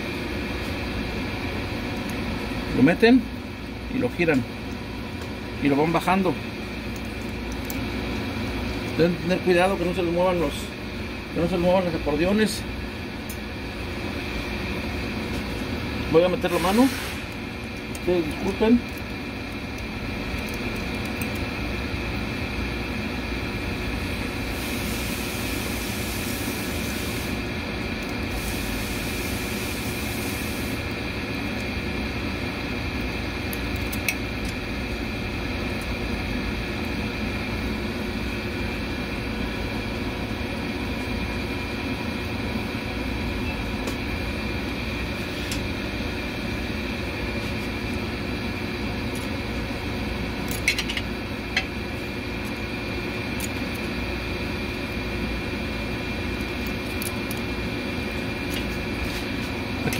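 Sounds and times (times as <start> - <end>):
mechanical hum: 0.0 - 59.9.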